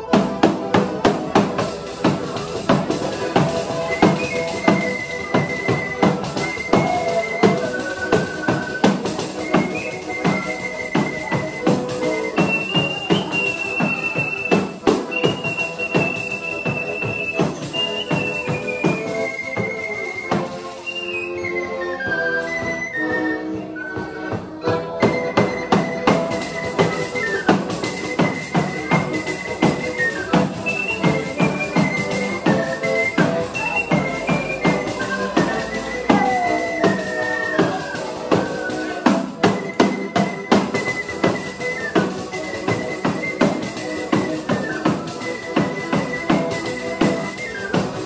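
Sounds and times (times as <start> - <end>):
accordion: 0.0 - 48.0
high held melody: 0.0 - 48.0.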